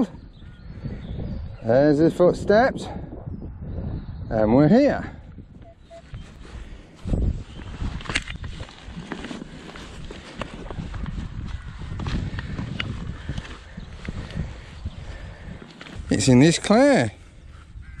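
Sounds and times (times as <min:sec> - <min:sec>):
earth scraping: 0:05.8 - 0:17.2.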